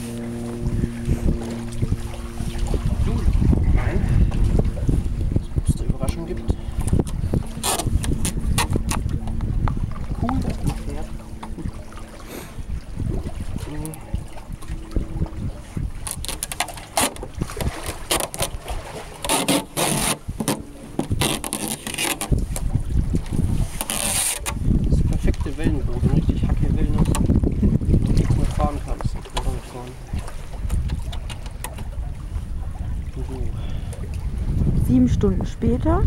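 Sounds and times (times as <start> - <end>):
wind buffeting microphone: 0.0 - 19.2, 20.2 - 36.0
hands handling plastic hull: 16.0 - 24.6.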